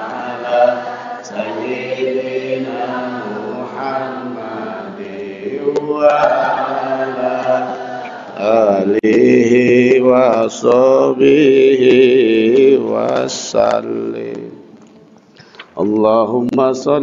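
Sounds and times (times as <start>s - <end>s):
male voices chanting: 0.0s - 14.5s.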